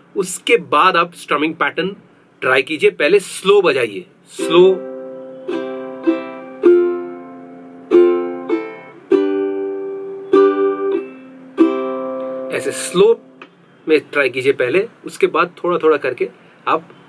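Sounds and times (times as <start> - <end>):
ukulele strumming: 4.4 - 13.5.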